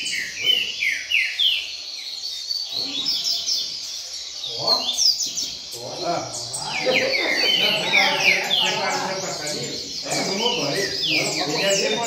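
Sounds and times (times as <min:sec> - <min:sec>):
small birds singing whistled notes: 0:00.0 - 0:12.0
men talking: 0:04.4 - 0:12.0.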